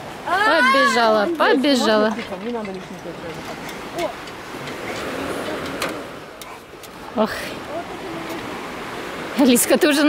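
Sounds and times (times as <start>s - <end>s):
outdoor background hiss: 0.0s - 10.0s
clicks and knocks on metal swing frame: 1.9s - 7.0s.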